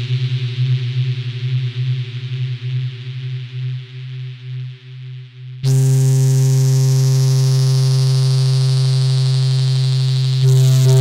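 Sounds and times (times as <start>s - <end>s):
buzzy low synthesizer note: 10.3s - 11.0s.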